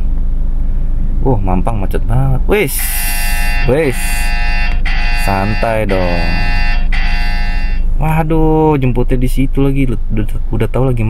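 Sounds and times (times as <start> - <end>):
car interior rumble: 0.0 - 11.0
multi-pitch buzzing tone: 2.7 - 8.0.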